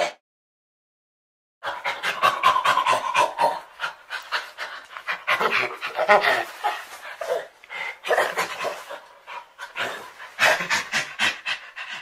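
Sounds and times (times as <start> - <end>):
breathy panting grunts: 7.2 - 12.0.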